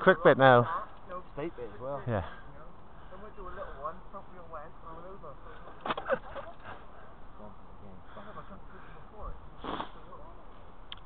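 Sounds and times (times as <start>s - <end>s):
breathy sniff: 9.6s - 10.0s.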